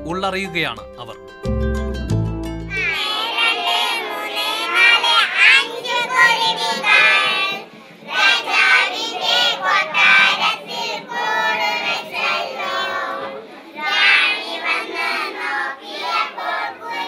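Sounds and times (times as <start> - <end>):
instrumental music: 0.0 - 3.3
children singing: 2.7 - 17.0.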